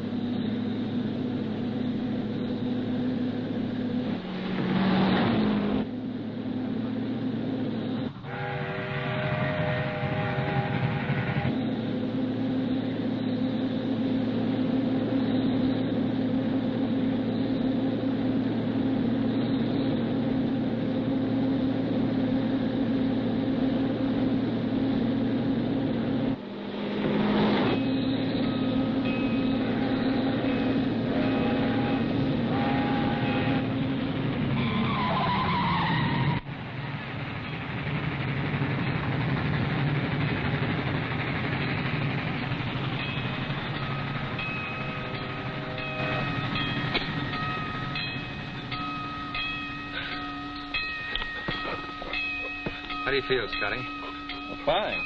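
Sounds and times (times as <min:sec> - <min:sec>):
car engine running hard: 0:00.0 - 0:55.0
train rumble: 0:00.0 - 0:55.0
train whistle: 0:08.2 - 0:11.6, 0:28.0 - 0:33.8.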